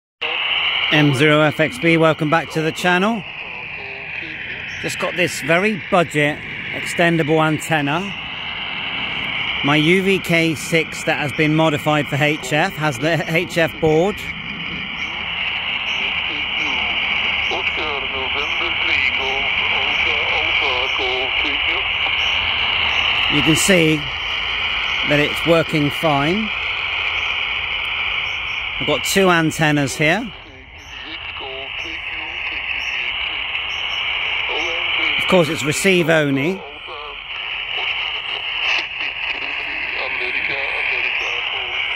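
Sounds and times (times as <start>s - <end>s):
faint voice over radio: 0.2s - 8.2s, 9.1s - 14.3s, 15.8s - 26.8s, 28.8s - 41.9s
radio static hiss: 0.2s - 41.9s.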